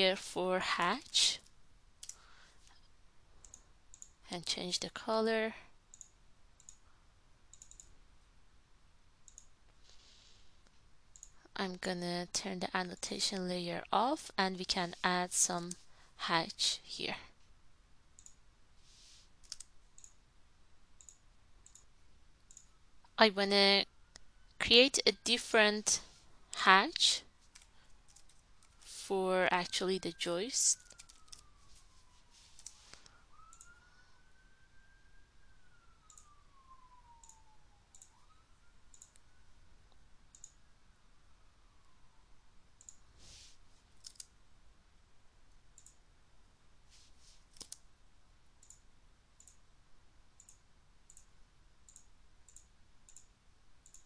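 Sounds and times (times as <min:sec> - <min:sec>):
low steady hiss: 0:00.0 - 0:30.8, 0:31.4 - 0:54.0
computer mouse clicks: 0:01.4 - 0:02.2, 0:03.4 - 0:04.2, 0:05.9 - 0:06.8, 0:07.5 - 0:08.0, 0:09.2 - 0:09.6, 0:10.6 - 0:11.4, 0:18.2 - 0:18.4, 0:19.4 - 0:20.2, 0:21.0 - 0:21.9, 0:22.5 - 0:22.7, 0:27.5 - 0:28.8, 0:30.8 - 0:31.5, 0:32.6 - 0:33.8, 0:36.1 - 0:36.3, 0:37.2 - 0:38.2, 0:38.9 - 0:39.2, 0:40.3 - 0:40.6, 0:42.8 - 0:43.0, 0:43.9 - 0:44.3, 0:45.8 - 0:46.0, 0:47.5 - 0:47.8, 0:48.6 - 0:48.8, 0:49.4 - 0:49.6, 0:50.4 - 0:51.3, 0:51.9 - 0:54.0.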